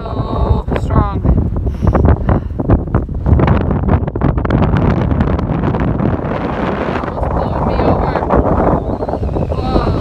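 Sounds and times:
strong wind buffeting microphone: 0.0 - 10.0.

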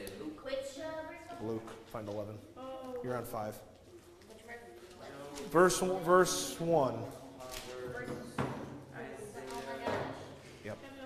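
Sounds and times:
indistinct talking in echoing hall: 0.0 - 11.0.

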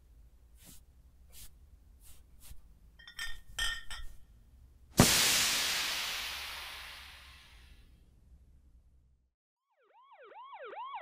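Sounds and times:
loud crash: 5.0 - 7.7.

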